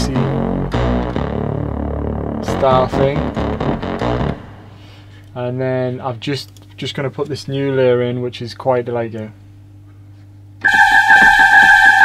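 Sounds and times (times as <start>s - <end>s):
low bassy synth: 0.0s - 5.2s
swooshy breathy synth pad: 4.6s - 5.3s.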